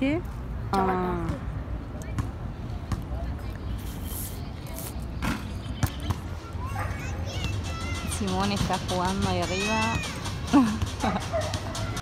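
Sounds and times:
faint distant voices: 0.5s - 12.0s.

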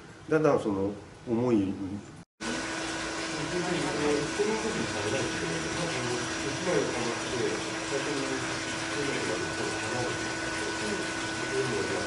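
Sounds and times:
machinery humming and hissing: 2.4s - 12.0s.

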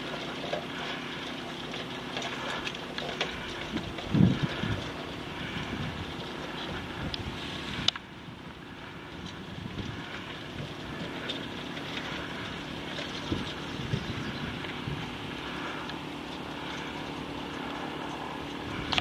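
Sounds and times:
wind buffeting microphone: 2.5s - 19.0s.

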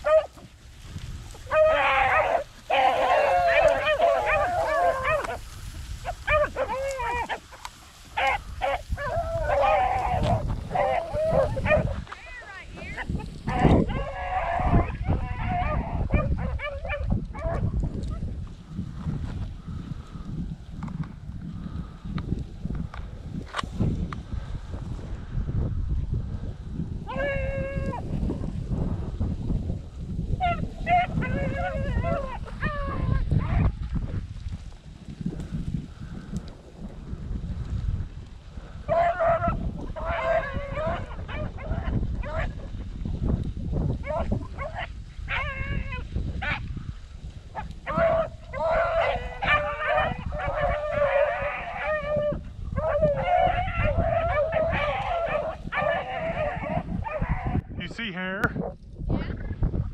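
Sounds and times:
beagles baying: 0.0s - 0.5s, 1.3s - 17.7s, 27.1s - 28.1s, 30.4s - 33.7s, 38.8s - 42.7s, 44.0s - 46.7s, 47.5s - 57.6s.

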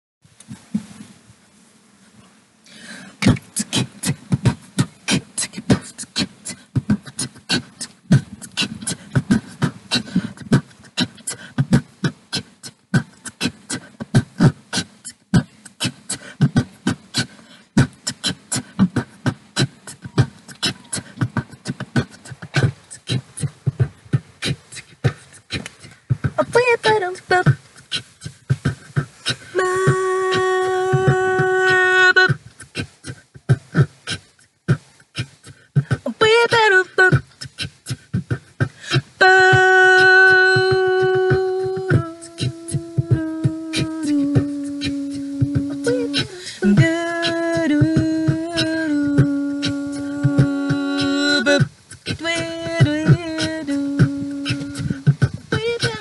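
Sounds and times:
microphone handling bumps: 0.3s - 1.4s
person beatboxing: 3.0s - 56.0s.

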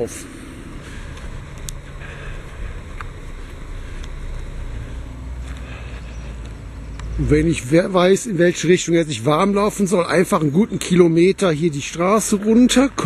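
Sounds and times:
faint clicks: 1.1s - 1.8s, 4.0s - 4.2s, 6.4s - 7.2s.

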